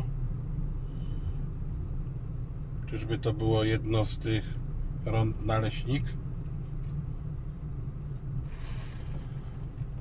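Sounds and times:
car engine and road hum: 0:00.0 - 0:10.0.

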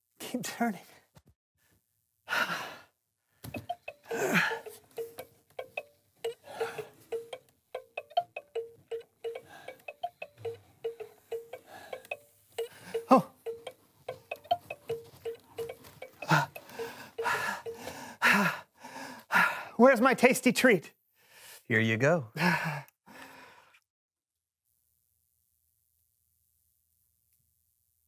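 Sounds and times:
hand crank chiming clicks: 0:03.6 - 0:17.9.

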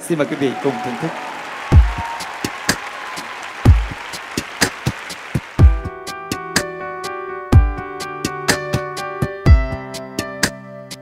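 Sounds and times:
audience applause: 0:00.0 - 0:06.0.

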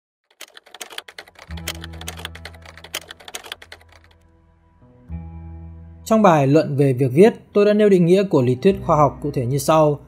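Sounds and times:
rapid keyboard typing clicks: 0:00.3 - 0:04.2.

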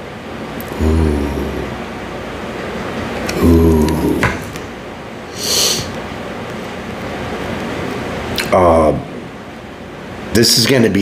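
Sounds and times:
steady background noise: 0:00.0 - 0:11.0
person humming: 0:00.6 - 0:01.8, 0:03.3 - 0:04.6.

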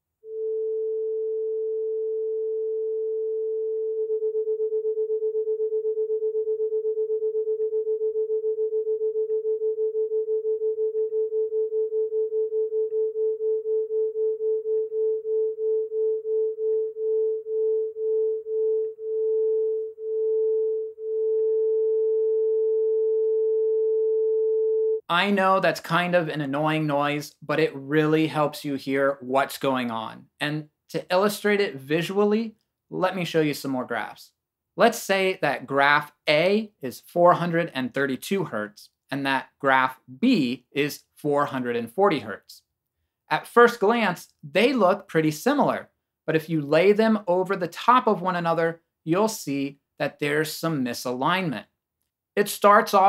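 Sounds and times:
steady sine tone: 0:00.2 - 0:25.0.

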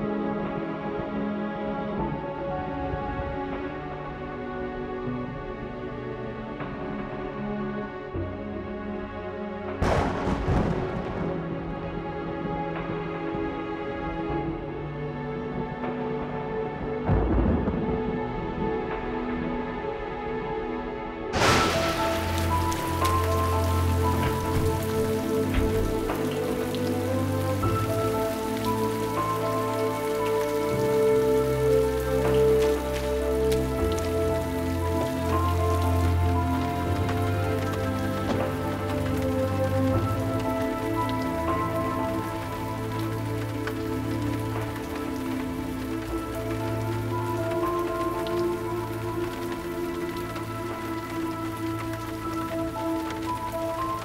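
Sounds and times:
slow orchestral score: 0:00.0 - 0:54.0
steady rain falling: 0:00.0 - 0:54.0.

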